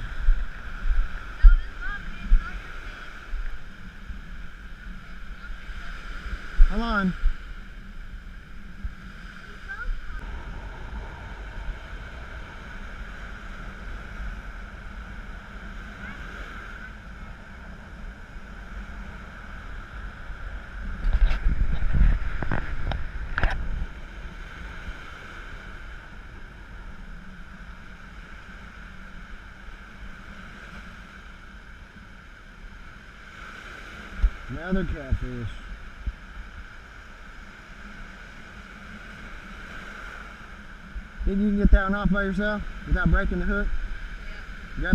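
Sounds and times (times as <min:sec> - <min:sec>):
surf breaking on beach: 0:00.0 - 0:44.9
wind rumbling on microphone: 0:00.0 - 0:44.9.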